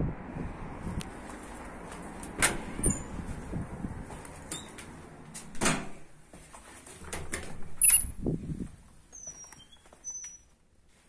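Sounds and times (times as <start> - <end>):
door squeak: 2.8 - 3.1, 4.5 - 4.8, 7.7 - 8.1, 9.1 - 10.5.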